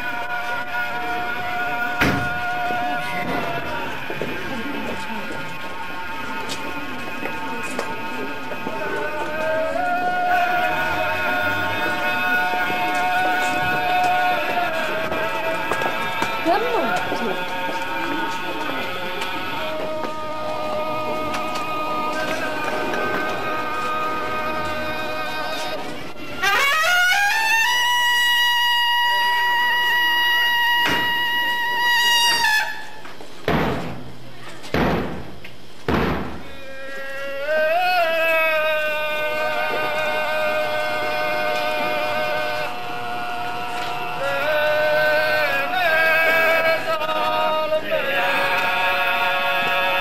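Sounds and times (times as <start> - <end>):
loud thumps: 2.0 - 2.5, 33.4 - 36.5.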